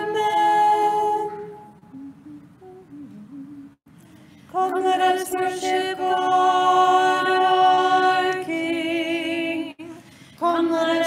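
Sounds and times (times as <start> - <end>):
person humming softly: 1.3 - 3.8.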